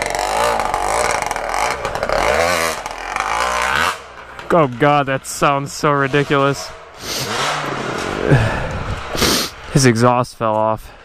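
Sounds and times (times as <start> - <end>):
dirt bike engine revving: 0.0 - 10.0
dirt bike engine running: 0.0 - 10.7
wind rushing on microphone: 8.5 - 9.3.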